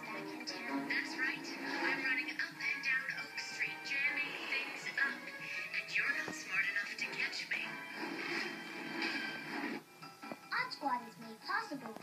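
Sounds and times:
television music: 0:00.0 - 0:12.0
voices from television: 0:00.0 - 0:12.0.

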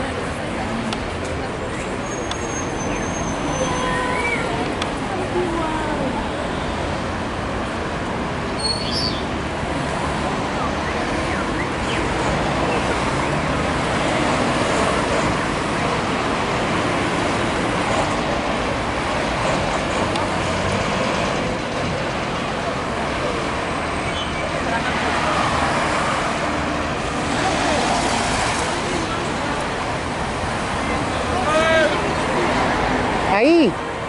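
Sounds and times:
cars passing: 0:00.0 - 0:34.0
low traffic rumble: 0:00.0 - 0:34.0.

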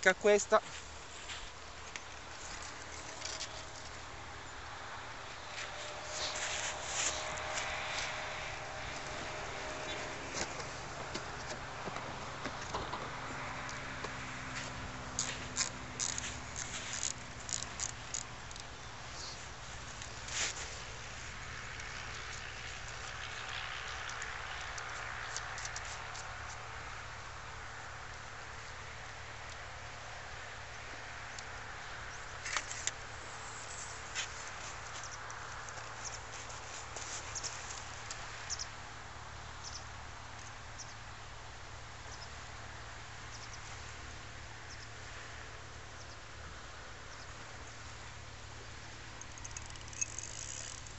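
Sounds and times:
footsteps crunching on shingle: 0:00.6 - 0:03.1, 0:08.9 - 0:17.8.

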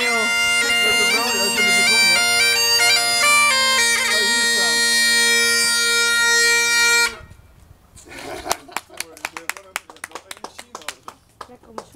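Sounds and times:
person speaking: 0:00.0 - 0:05.0
bagpipe note over drones: 0:00.0 - 0:07.4
hand claps: 0:08.7 - 0:11.9.

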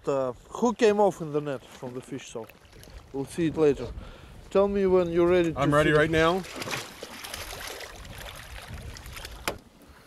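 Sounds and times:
water splashing and sloshing: 0:00.6 - 0:04.6, 0:05.2 - 0:10.0.

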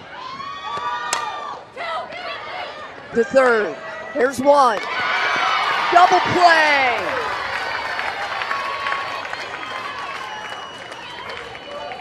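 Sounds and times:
crowd yelling and cheering: 0:00.0 - 0:12.0.

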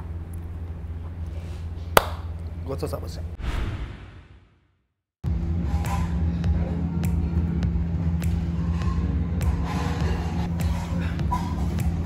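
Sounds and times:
hand clap: 0:02.0 - 0:02.3.

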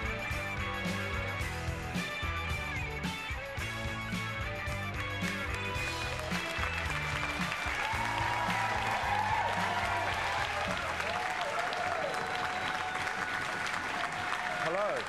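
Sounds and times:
theme music: 0:00.0 - 0:12.4
audience applauding: 0:04.6 - 0:15.0.

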